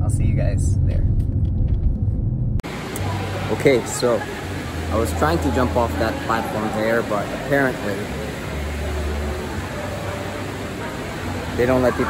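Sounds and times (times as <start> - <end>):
low rumble: 0.0 - 2.6
ventilation hum: 0.0 - 12.0.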